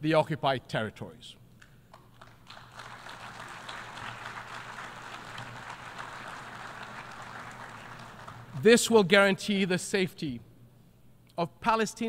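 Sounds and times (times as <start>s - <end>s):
audience applauding: 2.0s - 8.6s.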